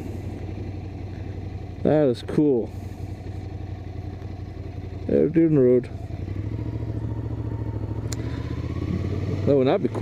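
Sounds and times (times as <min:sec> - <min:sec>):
motorcycle engine running at low revs: 0:00.0 - 0:10.0.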